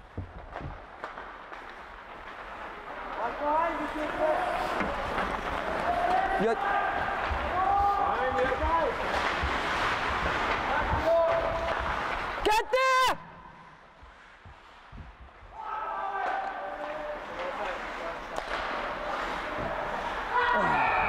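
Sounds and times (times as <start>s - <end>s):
hockey sticks and puck knocking: 0.0s - 12.4s, 16.0s - 20.2s
voices shouting and yelling: 5.7s - 9.0s, 12.4s - 13.5s, 15.5s - 17.8s, 18.9s - 21.0s.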